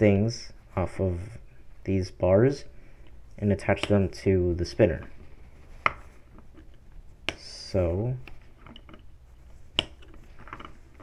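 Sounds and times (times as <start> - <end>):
handling plastic parts: 3.0 - 11.0.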